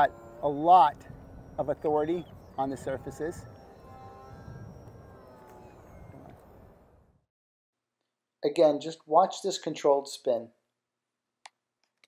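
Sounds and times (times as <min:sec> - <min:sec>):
wind rumble on microphone: 0:00.0 - 0:07.2
distant model plane motor whine: 0:00.0 - 0:07.3.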